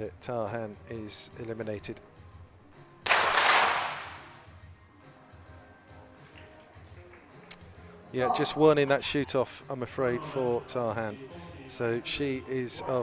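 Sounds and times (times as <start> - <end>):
faint background music: 0.0 - 13.0
sharp crack: 3.0 - 4.3.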